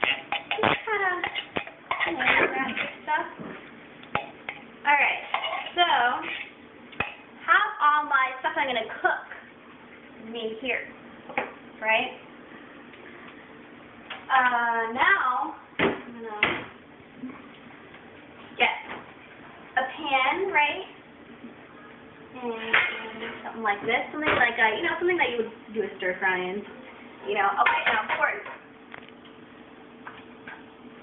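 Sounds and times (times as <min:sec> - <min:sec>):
faint steady hum: 0:00.0 - 0:31.0.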